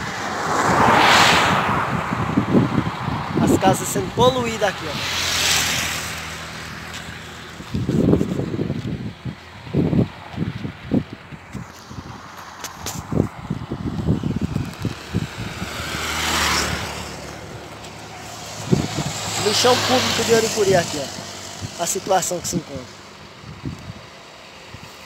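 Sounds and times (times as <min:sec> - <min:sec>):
vehicle passing on highway: 0:00.0 - 0:25.0
wind on microphone: 0:00.0 - 0:25.0.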